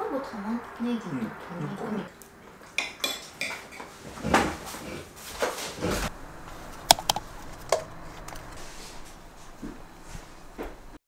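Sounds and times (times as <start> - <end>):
metal spoons clinking on plates: 2.8 - 3.9.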